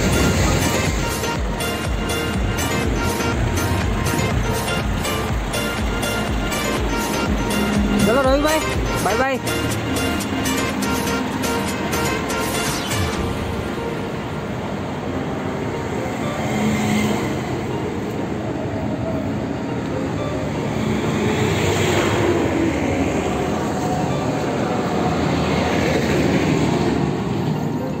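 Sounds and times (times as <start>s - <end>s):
bus engine and tyres passing: 0.0s - 28.0s.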